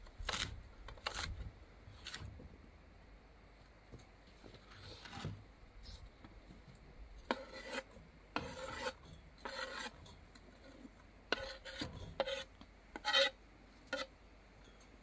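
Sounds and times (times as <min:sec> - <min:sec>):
knife scraping wooden cutting board: 0:07.2 - 0:14.1.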